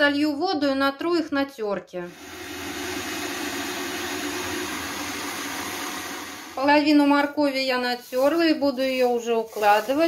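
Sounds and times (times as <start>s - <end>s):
kitchen machine motor humming: 2.1s - 7.0s.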